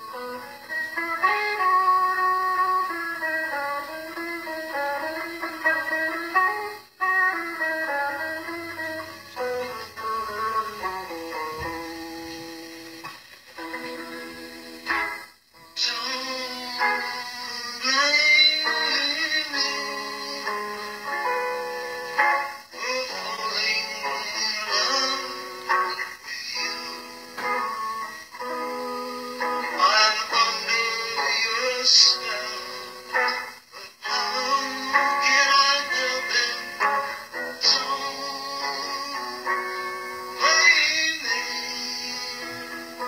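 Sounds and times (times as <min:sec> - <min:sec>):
held backing chords: 0:00.0 - 0:43.0
man singing into microphone: 0:15.6 - 0:21.4, 0:22.7 - 0:27.7, 0:28.4 - 0:43.0.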